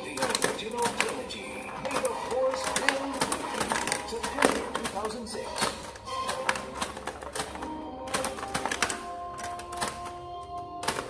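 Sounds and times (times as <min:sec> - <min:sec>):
plastic pinball flipper clicks: 0:00.0 - 0:11.0.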